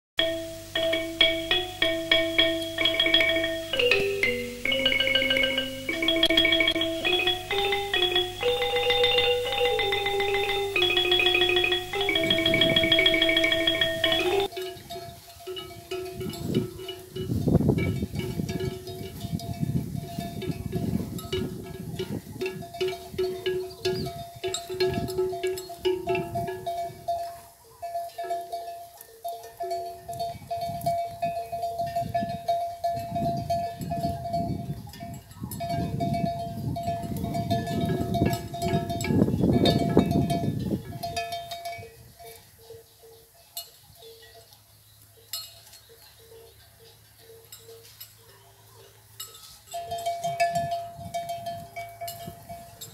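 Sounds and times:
animal bells clanking: 0.2s - 52.9s.

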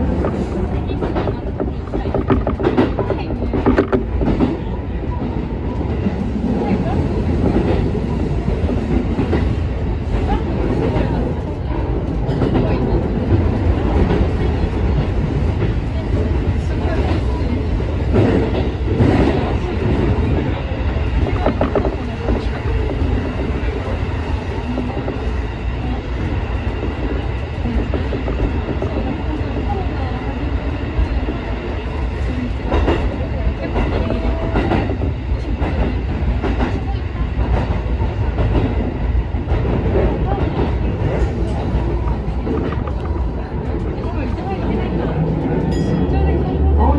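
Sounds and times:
train wheels rumbling on rail: 0.0s - 46.9s.

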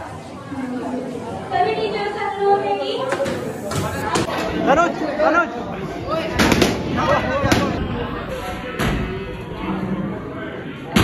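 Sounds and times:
voices and laughter: 4.5s - 8.6s.

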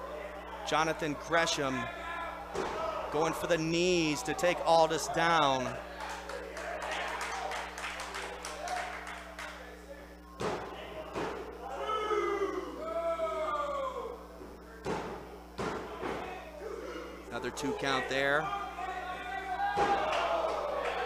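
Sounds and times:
crowd shouting: 0.0s - 9.1s, 11.5s - 14.2s, 15.9s - 21.0s
thuds on wrestling ring: 14.9s - 16.3s, 19.8s - 20.1s.

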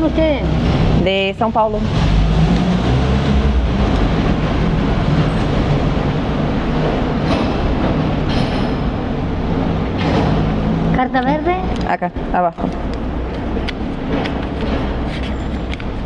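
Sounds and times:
broad rushing noise: 0.0s - 16.0s.

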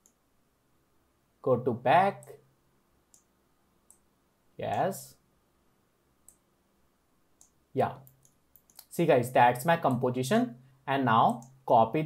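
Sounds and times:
computer mouse click: 0.0s - 0.2s, 6.2s - 6.4s, 7.4s - 8.9s.

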